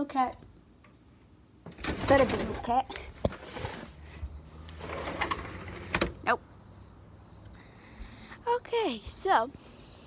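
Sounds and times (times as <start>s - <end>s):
door rumbling slide: 1.7s - 6.2s.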